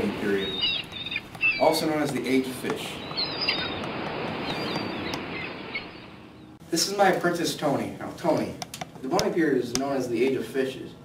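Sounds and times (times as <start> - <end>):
bird chirps: 0.2 - 6.6.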